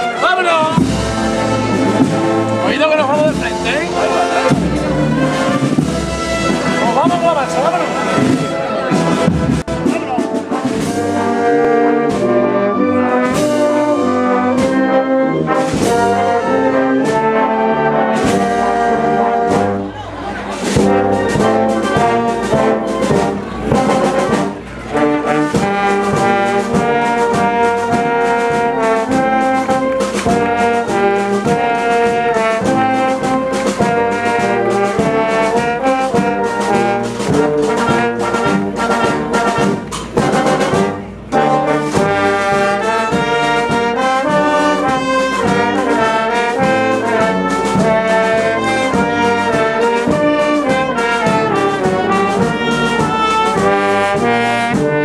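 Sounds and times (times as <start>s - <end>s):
brass band playing a march: 0.0s - 55.0s.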